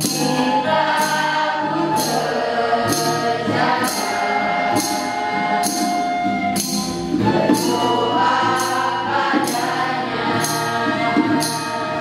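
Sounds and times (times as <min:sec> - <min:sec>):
choir singing in unison: 0:00.0 - 0:12.0
high rattling percussion: 0:00.0 - 0:12.0
strummed acoustic guitar: 0:00.0 - 0:12.0.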